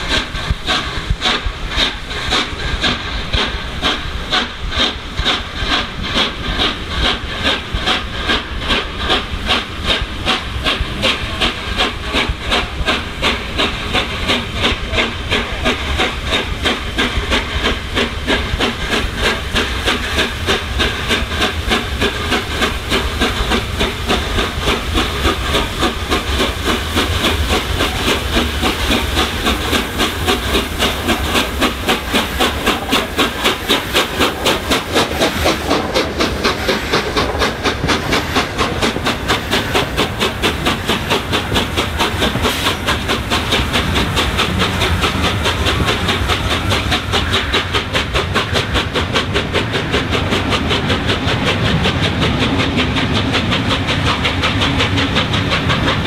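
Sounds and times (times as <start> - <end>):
steam hissing: 0.0 - 56.0
steam locomotive chuffing: 0.0 - 56.0.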